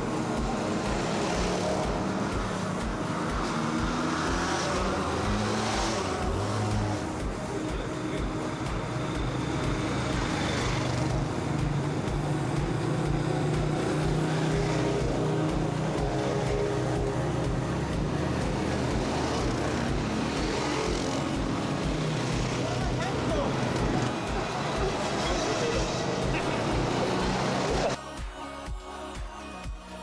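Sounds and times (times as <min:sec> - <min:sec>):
quad bike engines driving past: 0:00.0 - 0:28.0.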